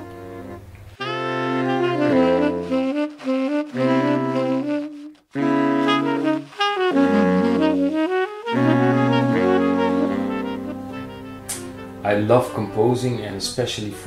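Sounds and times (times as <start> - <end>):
saxophone quartet playing: 0.0 - 14.0.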